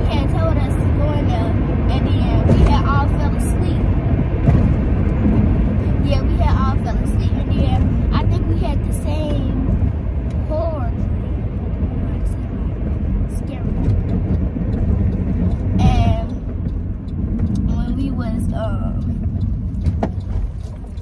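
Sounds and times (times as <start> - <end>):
child speaking: 0.0 - 3.8, 6.0 - 9.7, 15.8 - 16.3
car cabin road rumble: 0.0 - 21.0.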